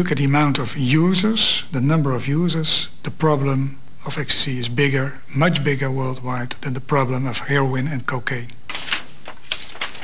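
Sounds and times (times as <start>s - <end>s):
man talking: 0.0s - 8.6s
brief rustling: 8.7s - 10.0s.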